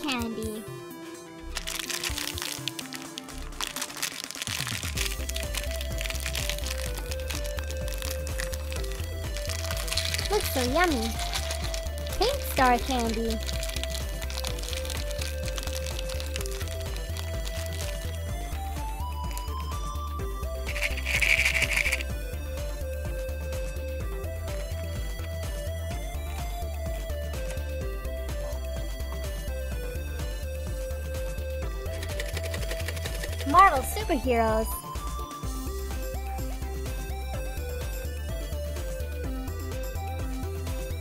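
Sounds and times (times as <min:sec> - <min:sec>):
plastic wrapper crinkling and tearing: 0:01.4 - 0:18.3, 0:19.2 - 0:19.6, 0:20.7 - 0:22.1, 0:31.9 - 0:33.6
candies rattling in plastic egg: 0:01.4 - 0:18.4, 0:19.0 - 0:19.9, 0:20.6 - 0:22.1, 0:31.9 - 0:34.0
background music with bass beat: 0:04.5 - 0:12.8, 0:13.4 - 0:33.7, 0:34.9 - 0:41.0.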